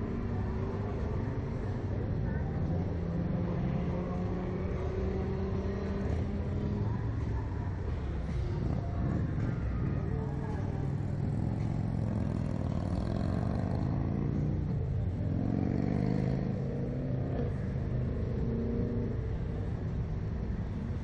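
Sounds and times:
road traffic: 0.0s - 21.0s
vehicle engine: 0.0s - 21.0s.

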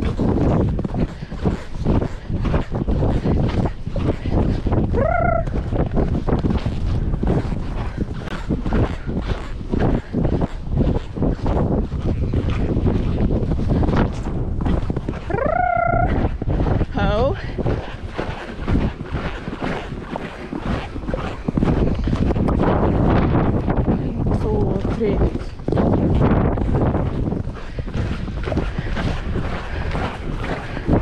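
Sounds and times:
horse being ridden: 0.0s - 31.0s
wind buffeting microphone: 0.0s - 31.0s
rising call: 5.0s - 5.5s, 15.3s - 16.2s
wavering call: 5.0s - 5.5s, 15.3s - 16.2s.

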